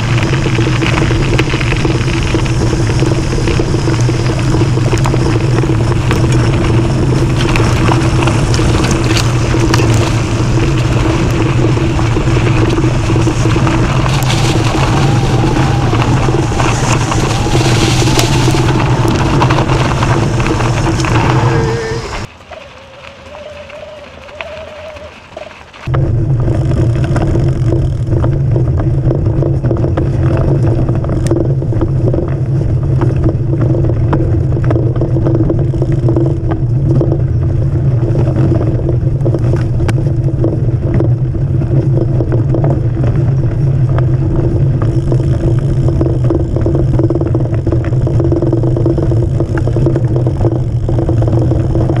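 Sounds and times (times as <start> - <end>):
bike rattling clicks: 0.0 - 25.9, 26.5 - 52.0
tyre and wind rumble: 0.0 - 52.0.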